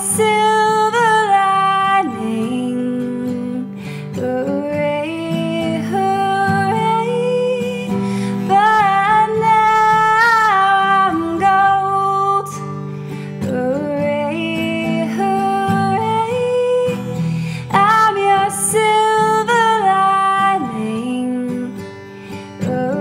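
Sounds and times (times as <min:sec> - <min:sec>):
acoustic guitar: 0:00.0 - 0:23.0
woman singing with vibrato: 0:00.0 - 0:23.0.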